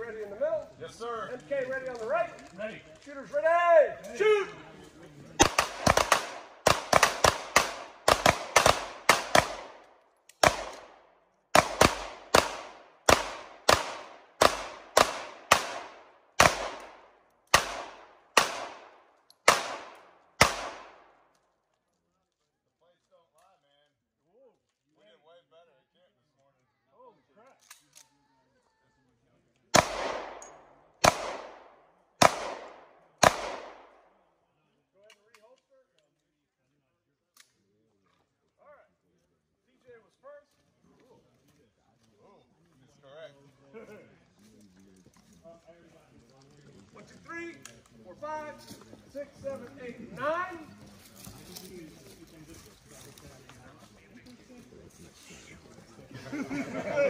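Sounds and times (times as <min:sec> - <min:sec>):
pistol shots: 0:05.4 - 0:21.2, 0:29.7 - 0:34.1.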